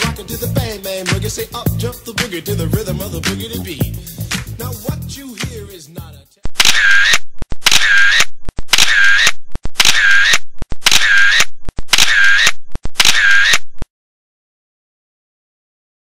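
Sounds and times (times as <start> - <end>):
camera shutter clicking: 6.6 - 13.7.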